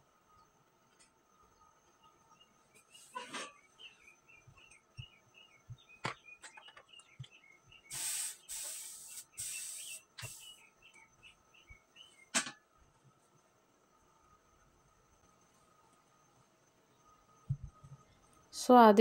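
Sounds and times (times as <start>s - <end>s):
small bird chirping: 1.9s - 12.3s
iron hissing over fabric: 7.9s - 10.6s.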